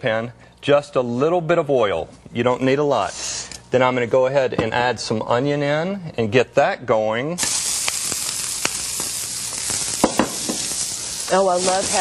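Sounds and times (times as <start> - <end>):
onion sizzling in a pan: 7.4 - 12.0.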